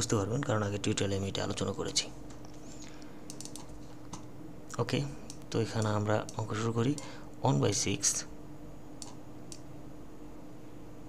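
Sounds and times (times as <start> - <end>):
low electrical hum: 0.0 - 11.0
computer clicks: 3.3 - 4.3, 5.2 - 7.1, 9.0 - 9.7.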